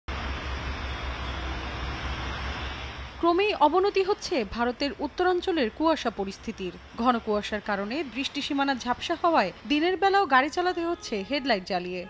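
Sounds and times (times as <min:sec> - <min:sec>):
highway traffic noise: 0:00.1 - 0:12.0.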